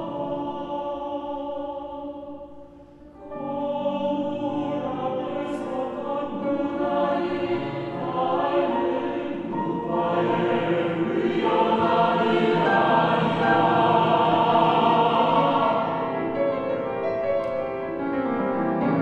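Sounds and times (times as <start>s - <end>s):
mixed choir singing: 0.0s - 17.2s.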